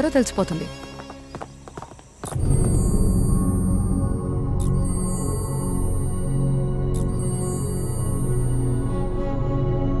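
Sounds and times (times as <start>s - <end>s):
footsteps on hard floor: 0.8s - 3.0s.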